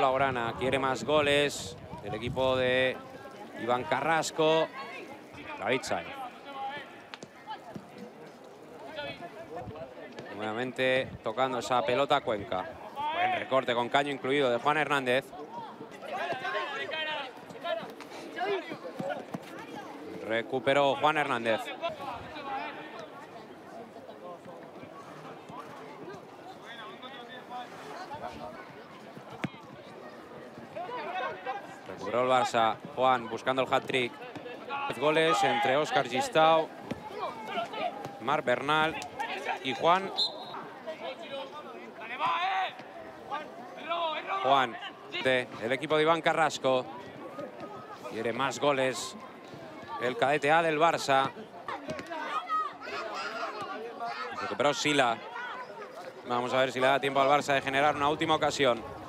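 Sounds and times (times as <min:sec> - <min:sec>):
players shouting: 0:33.2 - 0:45.2, 0:49.8 - 0:56.0.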